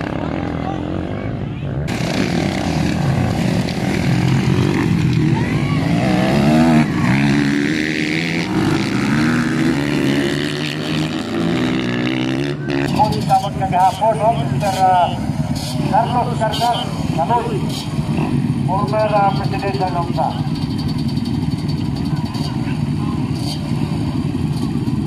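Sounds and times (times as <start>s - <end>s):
dirt bike engines revving: 0.0s - 25.0s.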